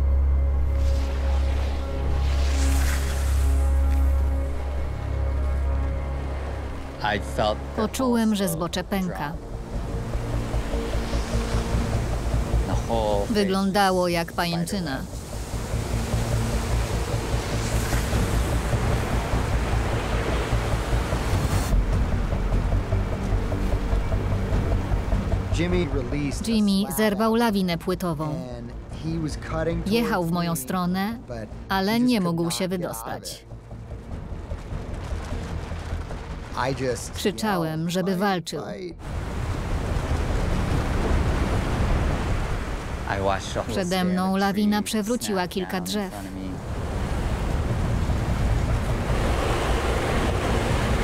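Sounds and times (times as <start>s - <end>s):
music score with low tones: 0.0s - 41.8s
rushing hiss of snow: 0.7s - 4.2s, 17.4s - 18.6s
avalanche rushing and rumbling: 9.4s - 27.5s, 33.4s - 37.6s, 39.0s - 51.0s.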